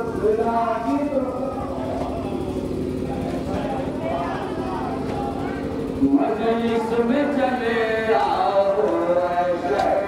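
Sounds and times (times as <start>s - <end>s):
low rumbling background noise: 0.0s - 10.0s
steady low hum: 0.0s - 10.0s.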